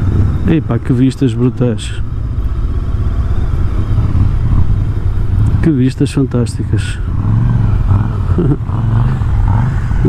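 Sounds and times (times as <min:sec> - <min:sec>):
motorcycle engine running at low revs: 0:00.0 - 0:10.0.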